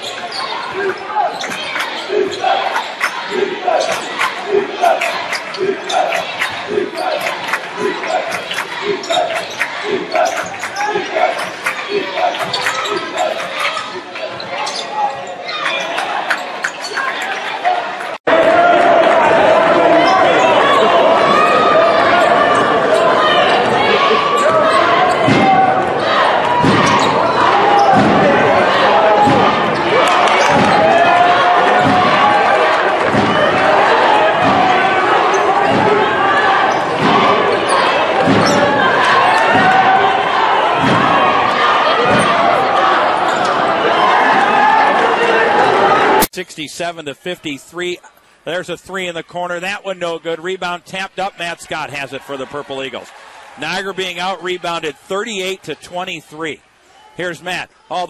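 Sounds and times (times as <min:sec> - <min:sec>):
crowd chatter in gymnasium: 0:00.0 - 0:58.0.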